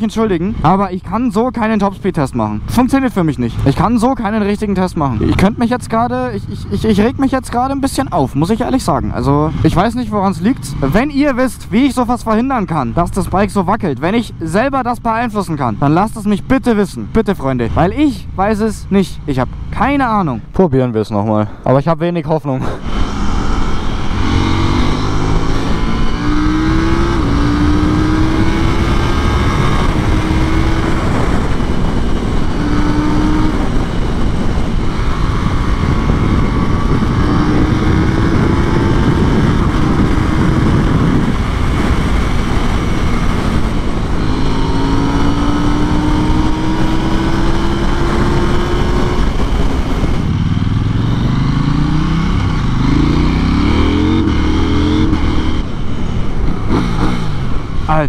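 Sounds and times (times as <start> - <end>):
loud wind rush: 22.6 - 58.0
motorcycle engine at high revs: 22.7 - 58.0.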